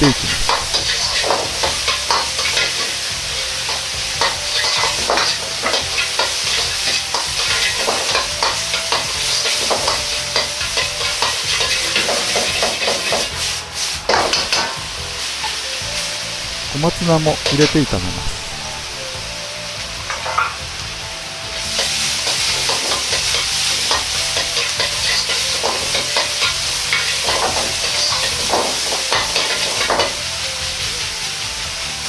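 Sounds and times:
tofu sizzling in hot oil: 0.2s - 16.7s, 18.8s - 32.0s
metal ladle scraping a wok: 0.3s - 3.0s, 3.7s - 14.8s.

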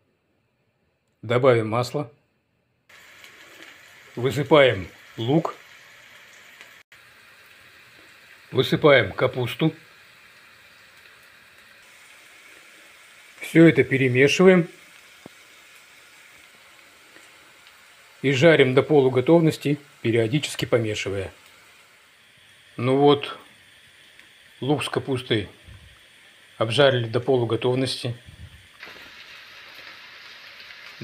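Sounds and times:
vegetables sizzling in a pan: 2.9s - 31.0s.

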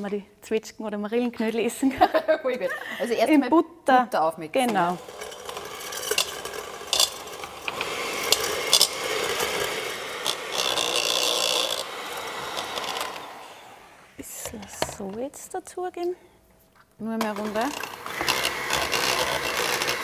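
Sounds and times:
beaters scraping metal bowl: 4.6s - 13.5s, 17.2s - 20.0s
electric hand mixer beating dough: 4.7s - 15.1s, 17.3s - 20.0s.

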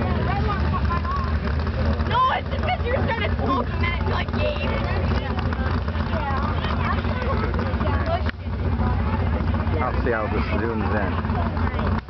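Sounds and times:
lawn tractor engine idling: 0.0s - 12.0s
people talking: 0.0s - 12.0s.

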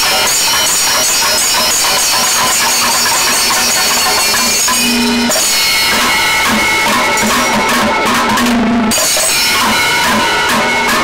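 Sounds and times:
rapid drum strokes: 0.0s - 11.0s
ringing brass cymbals: 0.0s - 11.0s.

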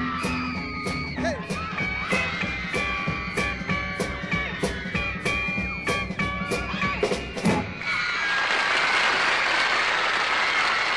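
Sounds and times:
audience applauding: 7.8s - 10.9s.

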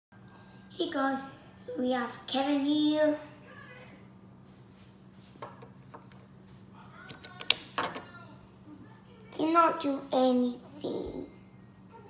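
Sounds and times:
faint low hum: 0.2s - 12.0s
handling clicks and knocks: 7.0s - 8.1s.

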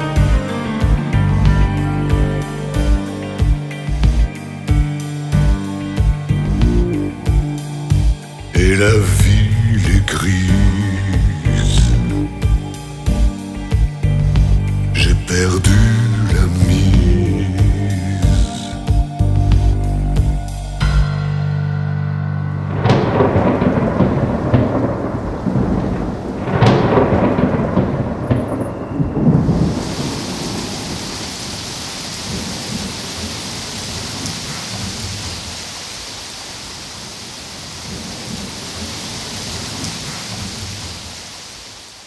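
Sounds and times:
steady rain hiss: 0.0s - 20.8s, 22.7s - 42.0s
thunder rolling: 22.6s - 35.5s.

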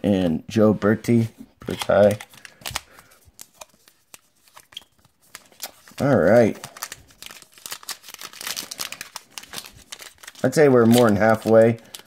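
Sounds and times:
foil wrappers rustling: 1.6s - 12.0s.

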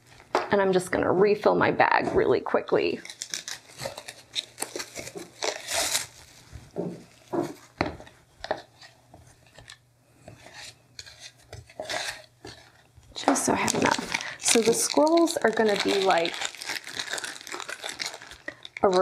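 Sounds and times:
plastic bag crinkling: 2.8s - 8.2s, 11.0s - 19.0s.

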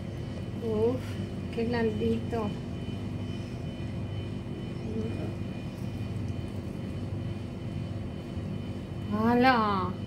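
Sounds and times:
appliance motor humming: 0.0s - 10.0s
faint high whining tones: 0.0s - 10.0s.

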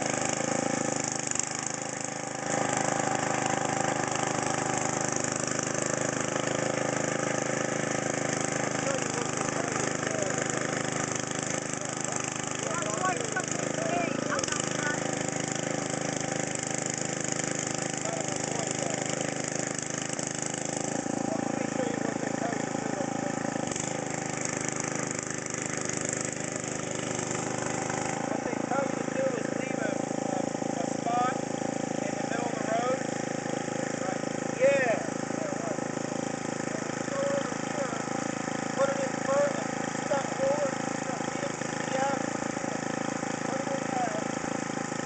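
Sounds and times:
rototiller engine running: 0.0s - 45.0s.

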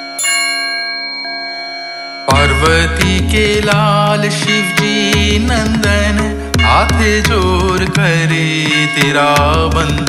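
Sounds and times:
struck bell tone: 0.0s - 10.0s.

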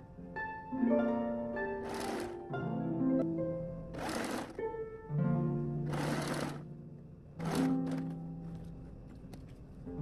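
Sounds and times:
plucked string music: 0.0s - 8.8s
sewing machine stitching: 1.8s - 2.4s, 4.0s - 4.6s, 5.9s - 6.6s, 7.4s - 8.2s.

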